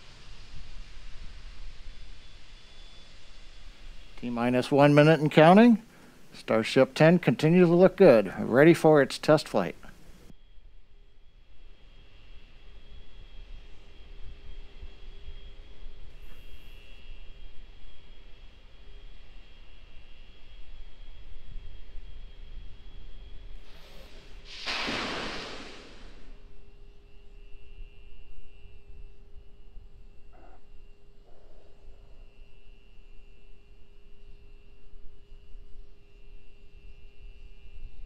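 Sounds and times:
rushing hiss of venting gas: 0:00.0 - 0:06.8, 0:23.6 - 0:26.6
low steady rumble: 0:00.0 - 0:08.6
faint steady whine: 0:00.0 - 0:38.0.

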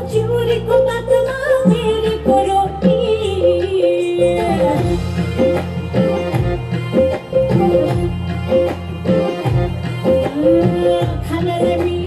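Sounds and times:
sustained bass: 0:00.0 - 0:12.0.

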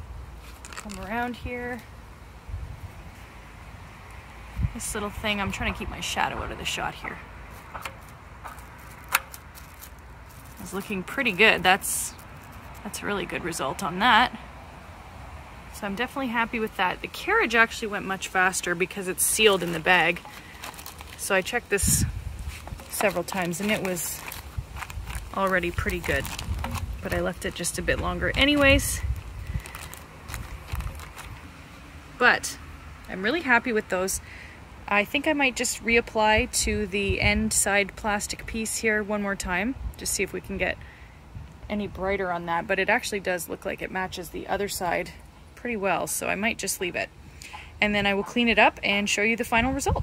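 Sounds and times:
wind rumble on microphone: 0:02.4 - 0:03.7, 0:04.4 - 0:07.4, 0:21.2 - 0:31.6, 0:35.8 - 0:42.4, 0:49.4 - 0:50.0
plastic bag crinkling: 0:08.0 - 0:11.4, 0:19.2 - 0:21.6, 0:22.4 - 0:31.4.

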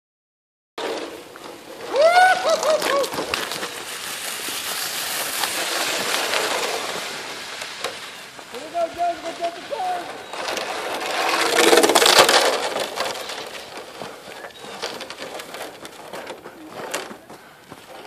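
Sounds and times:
sled scraping over ice: 0:00.8 - 0:18.0.

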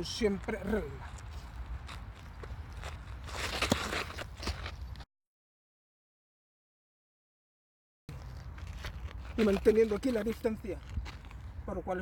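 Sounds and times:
footsteps on gritty dirt: 0:00.0 - 0:05.1, 0:08.1 - 0:12.0.

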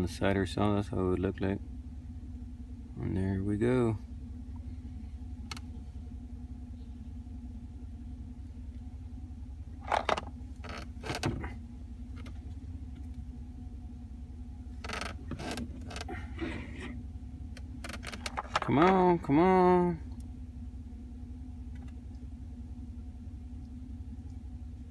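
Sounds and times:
truck idling inside cab: 0:00.0 - 0:24.9.

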